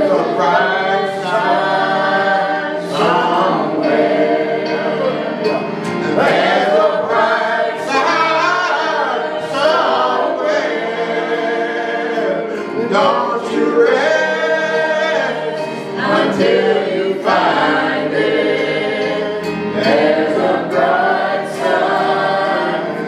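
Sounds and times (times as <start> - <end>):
group singing gospel song: 0.0 - 23.0.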